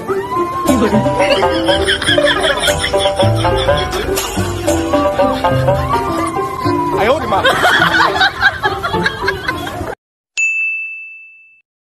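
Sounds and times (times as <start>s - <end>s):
music: 0.0s - 10.0s
voices and laughter: 0.7s - 10.0s
bright electronic ding: 10.4s - 11.6s.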